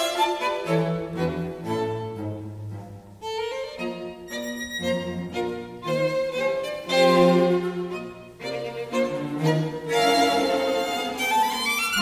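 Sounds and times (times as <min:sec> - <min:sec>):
string quartet playing: 0:00.0 - 0:12.0
violins playing: 0:00.0 - 0:12.0.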